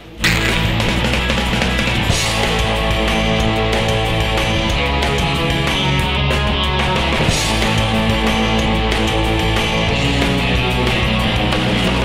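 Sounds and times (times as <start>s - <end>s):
loud background music: 0.0s - 12.0s.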